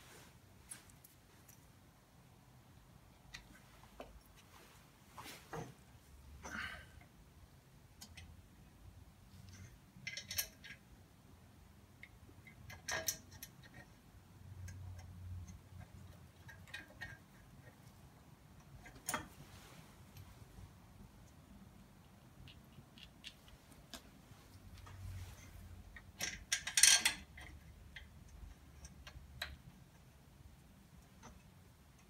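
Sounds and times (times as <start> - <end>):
small metal parts clinking: 26.0 - 27.6.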